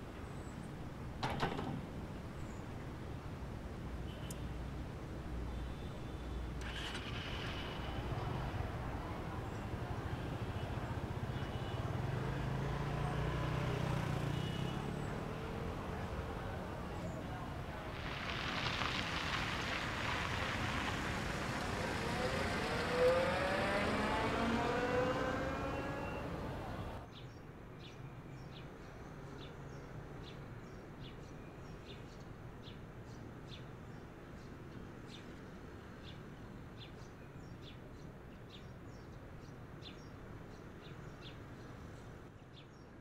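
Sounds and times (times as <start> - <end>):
car engine accelerating: 19.9 - 27.0.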